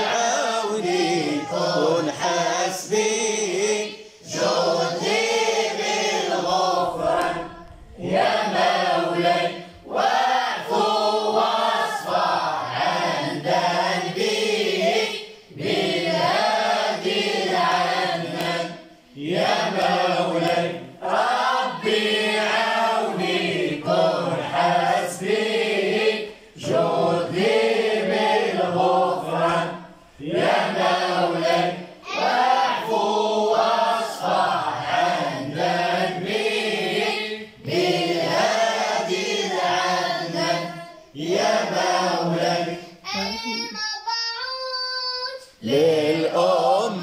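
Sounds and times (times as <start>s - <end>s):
man singing: 0.0s - 3.8s
boys singing devotional song: 0.0s - 47.0s.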